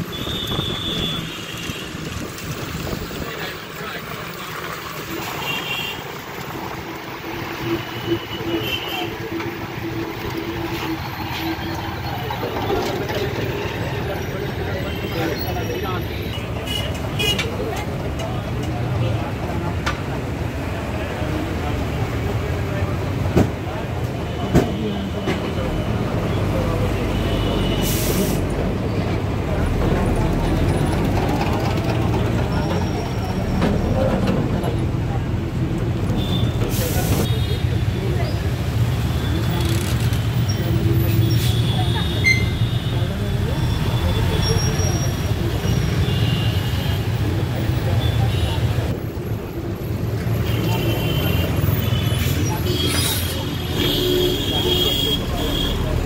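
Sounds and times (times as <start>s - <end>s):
road noise: 0.0s - 56.0s
bus engine rumble: 6.3s - 45.7s.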